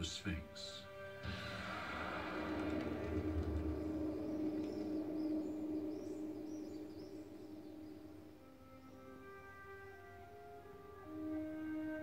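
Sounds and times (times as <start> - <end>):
low drone: 0.9 - 11.8
rushing wash of sound: 1.2 - 8.6
faint high chirps: 2.4 - 9.2.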